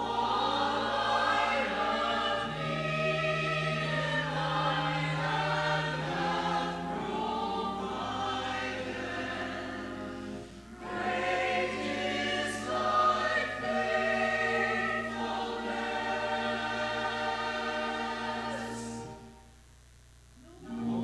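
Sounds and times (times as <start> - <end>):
mixed choir singing: 0.0 - 19.3, 20.7 - 21.0.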